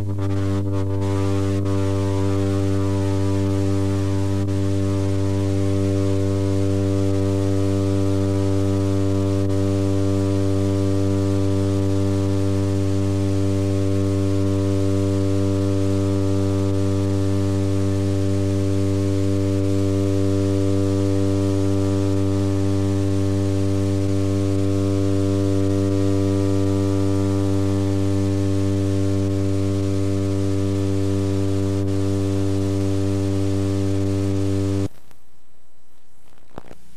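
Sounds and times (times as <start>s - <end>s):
amplified low drone: 0.0s - 34.9s.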